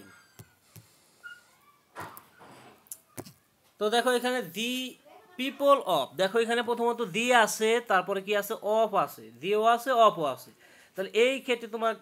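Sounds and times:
faint high chirp: 1.2s - 2.5s.

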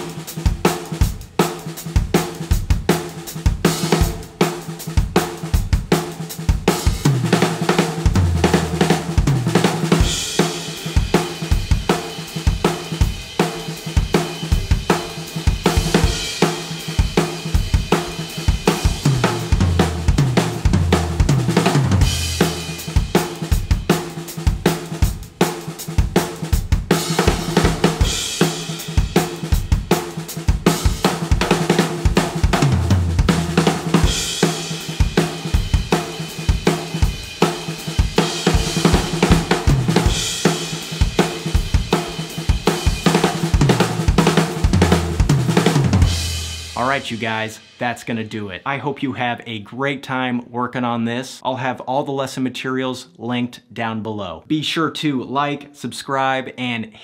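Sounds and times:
drum kit playing: 0.0s - 49.2s.

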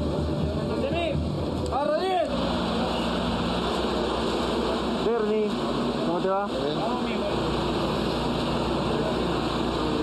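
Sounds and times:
bus engine idling: 0.0s - 10.0s.

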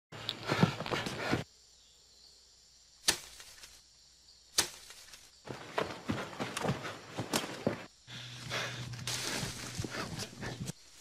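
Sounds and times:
rustling and snapping undergrowth: 3.0s - 3.8s, 4.6s - 5.3s, 8.4s - 11.0s.

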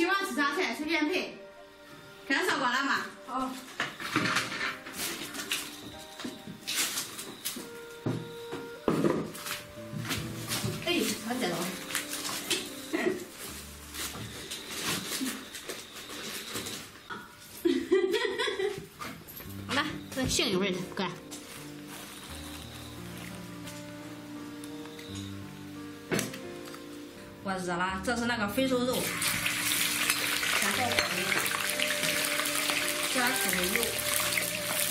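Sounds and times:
woman talking: 0.0s - 1.4s, 2.3s - 3.6s, 10.8s - 11.8s, 19.7s - 21.2s, 27.4s - 29.1s, 30.6s - 31.5s, 33.1s - 34.1s
background music: 0.0s - 15.4s, 17.0s - 34.9s.

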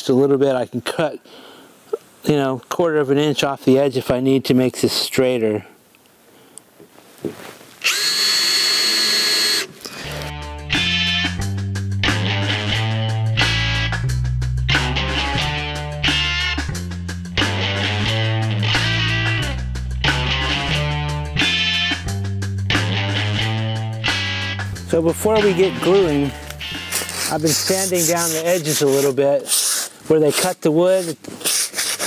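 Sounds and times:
cordless drill whining: 7.8s - 10.3s
background music with bass and guitar: 9.9s - 28.5s.

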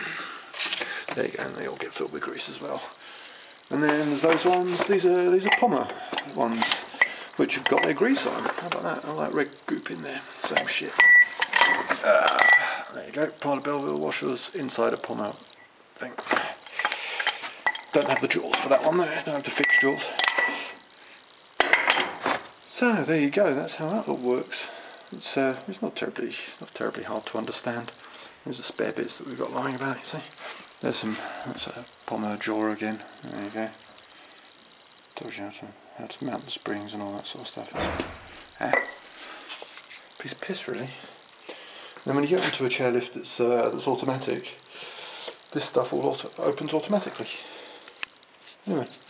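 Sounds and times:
metal parts scraping and knocking: 3.8s - 8.8s, 10.4s - 12.7s
metal parts knocking together: 10.4s - 12.7s
ringing metal clink: 10.6s - 12.7s, 19.6s - 20.6s.

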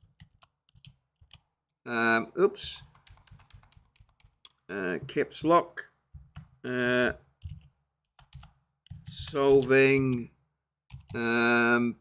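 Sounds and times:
computer keyboard keys tapping: 0.0s - 1.5s, 2.7s - 4.6s, 6.1s - 6.6s, 7.4s - 10.2s, 10.9s - 11.3s
man's voice: 9.1s - 10.3s, 11.1s - 12.0s.

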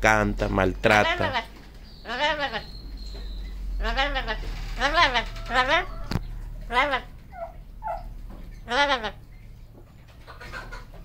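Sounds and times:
parrot cry-like call: 1.0s - 2.8s, 3.4s - 9.2s.

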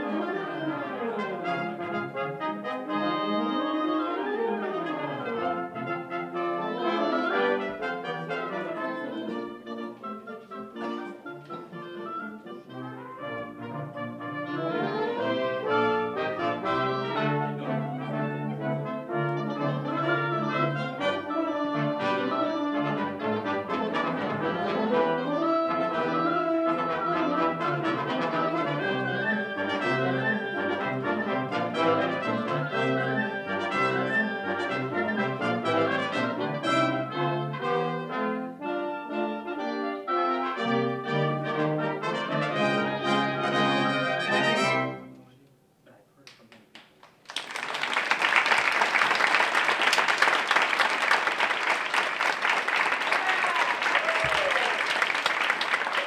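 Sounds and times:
wind band playing: 0.0s - 45.2s, 47.8s - 56.0s.

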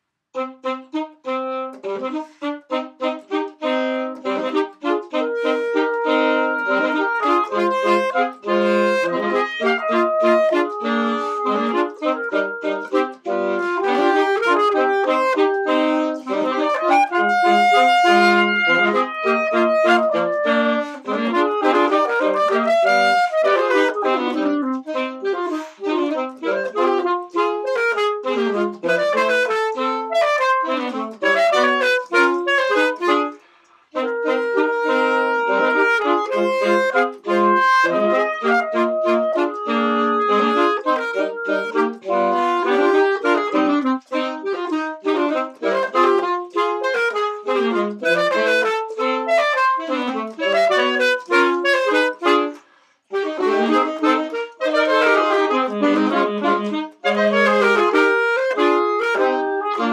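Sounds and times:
saxophones playing in harmony: 0.3s - 59.9s.

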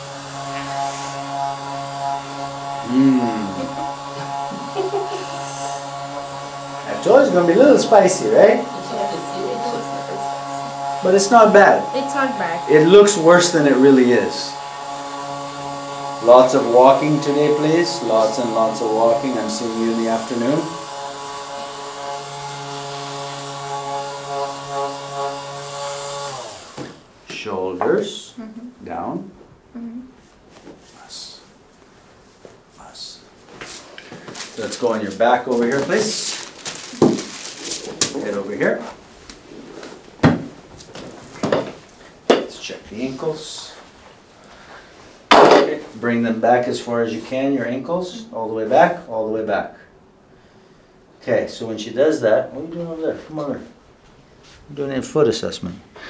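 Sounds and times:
vibration machine humming: 0.0s - 26.9s
brief vocal sound: 2.9s - 3.8s.

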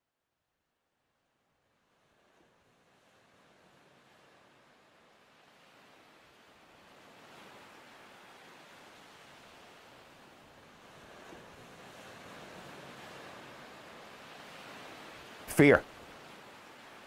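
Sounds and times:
wind: 0.0s - 17.0s
sea surf: 2.0s - 17.0s.

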